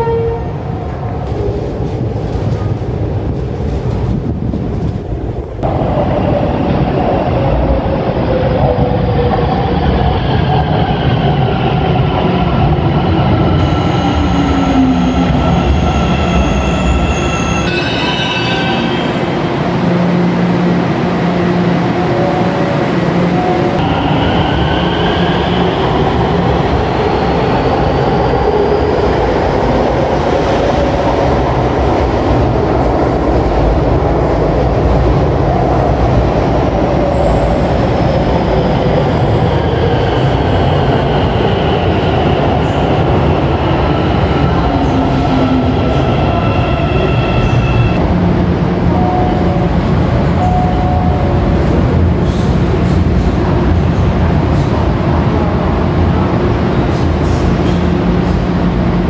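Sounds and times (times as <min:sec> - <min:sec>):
rail rumble: 0:00.0 - 0:59.0.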